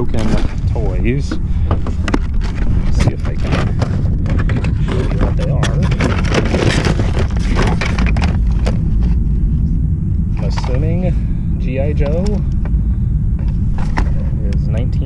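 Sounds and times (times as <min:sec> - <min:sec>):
rummaging clicks and knocks: 0:00.0 - 0:08.8
cardboard and paper rustling: 0:00.0 - 0:09.2
wind rumble on microphone: 0:00.0 - 0:15.0.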